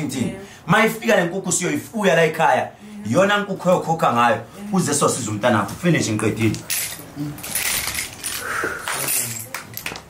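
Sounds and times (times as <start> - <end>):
bones and shells rattling: 6.6 - 10.0.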